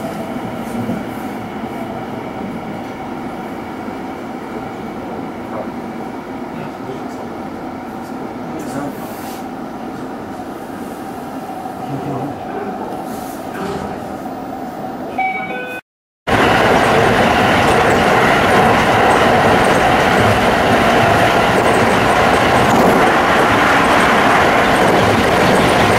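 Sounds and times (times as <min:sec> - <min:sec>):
electric train running: 0:16.3 - 0:25.9.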